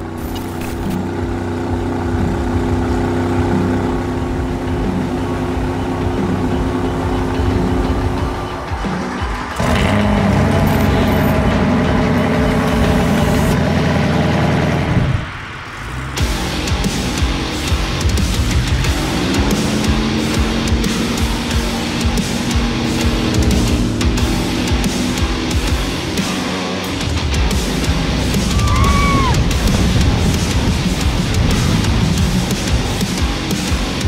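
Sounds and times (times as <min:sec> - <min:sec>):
boat engine running hard: 0:00.0 - 0:08.6, 0:16.2 - 0:28.5, 0:29.4 - 0:34.0
music soundtrack: 0:00.0 - 0:34.0.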